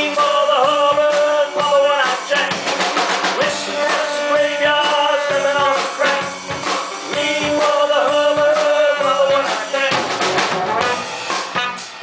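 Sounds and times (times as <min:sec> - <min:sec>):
live rock band instrumental: 0:00.0 - 0:12.0.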